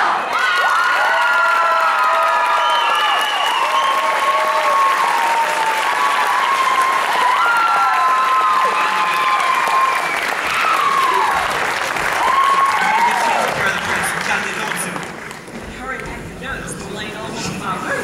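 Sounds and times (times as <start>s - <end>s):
audience applauding: 0.0s - 16.4s
whoops and cheers: 0.2s - 13.6s.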